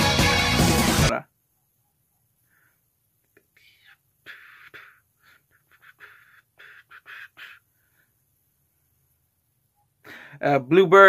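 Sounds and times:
man whispering: 0:03.4 - 0:07.7.

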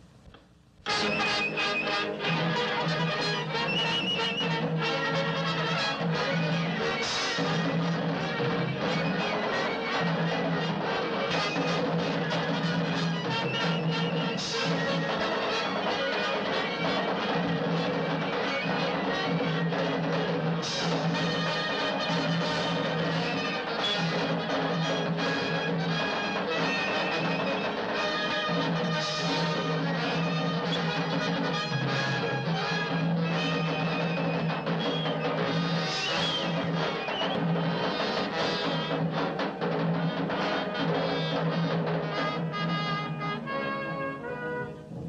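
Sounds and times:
orchestral brass and drums: 0:00.0 - 0:45.0.

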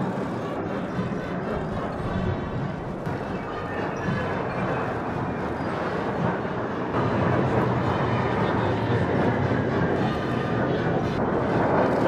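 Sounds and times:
jet engines rushing overhead: 0:00.0 - 0:12.0.

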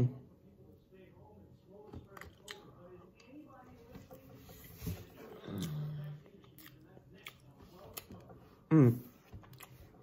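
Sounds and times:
person chewing: 0:02.0 - 0:03.3, 0:04.4 - 0:10.0
person humming mmm: 0:08.7 - 0:09.1.

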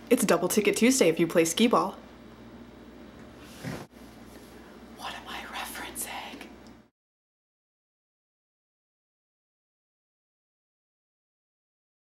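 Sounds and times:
low room hum: 0:00.0 - 0:06.9
woman whispering breathily: 0:05.0 - 0:06.5.

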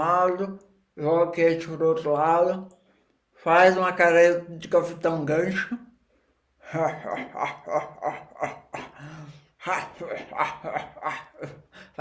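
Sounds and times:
man laughing: 0:05.4 - 0:05.9, 0:06.6 - 0:12.0.

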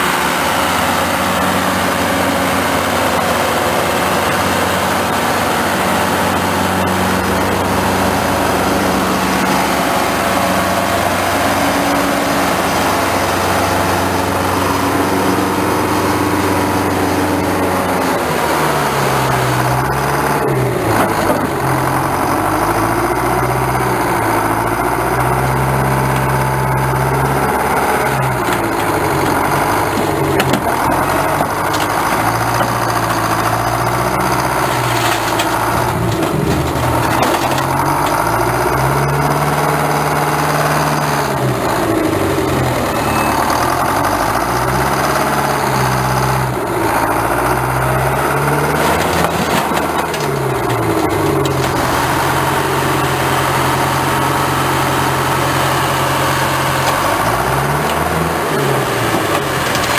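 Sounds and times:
machine engine revving: 0:00.0 - 0:59.9.

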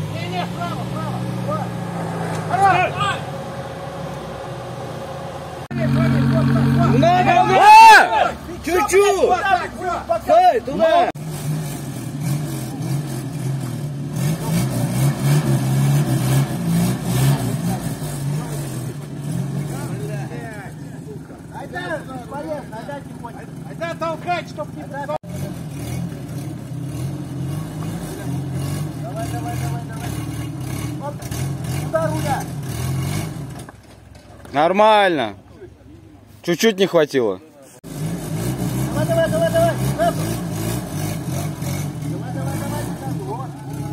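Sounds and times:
vehicle engine running hard: 0:00.0 - 0:08.9, 0:11.0 - 0:34.0, 0:37.8 - 0:43.9
men shouting: 0:00.1 - 0:03.4, 0:05.8 - 0:11.2, 0:42.5 - 0:43.9.

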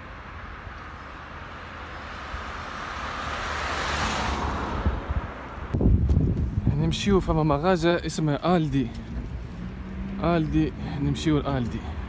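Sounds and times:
car passing by: 0:00.4 - 0:05.9, 0:08.6 - 0:12.0
wind on microphone: 0:04.6 - 0:07.0.

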